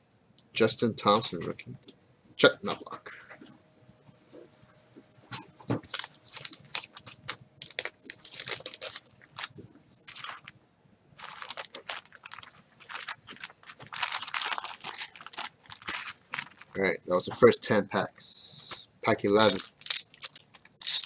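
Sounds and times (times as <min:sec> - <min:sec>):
plastic crinkling: 0:05.3 - 0:10.6, 0:11.2 - 0:16.8, 0:19.2 - 0:21.0.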